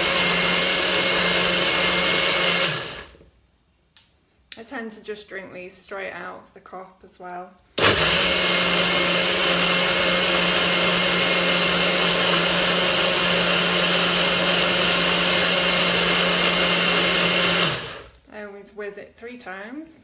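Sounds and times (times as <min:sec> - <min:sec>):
blender running: 0:00.0 - 0:03.2, 0:07.8 - 0:18.1.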